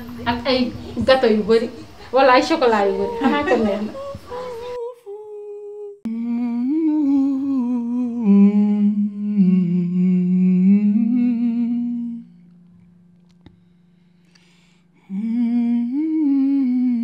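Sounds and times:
low steady drone: 0:00.0 - 0:04.8, 0:06.1 - 0:17.0
person humming a slow melody: 0:03.0 - 0:17.0.

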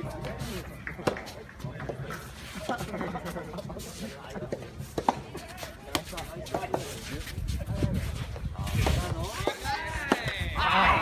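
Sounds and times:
rackets striking tennis ball: 0:08.8 - 0:10.5.

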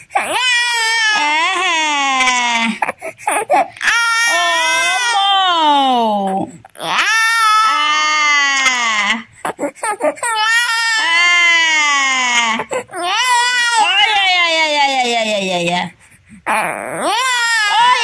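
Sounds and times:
infant crying: 0:00.0 - 0:14.7, 0:16.5 - 0:18.0.

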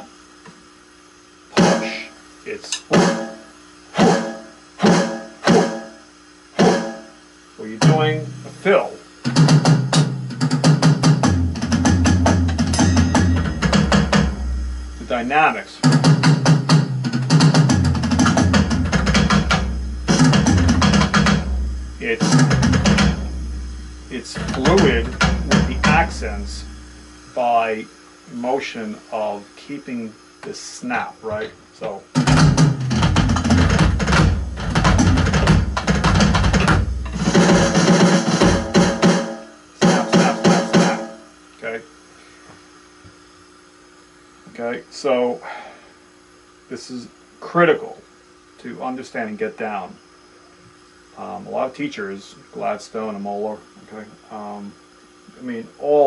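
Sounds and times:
electronic drum fill: 0:01.5 - 0:02.1, 0:02.7 - 0:27.5, 0:32.1 - 0:41.4.

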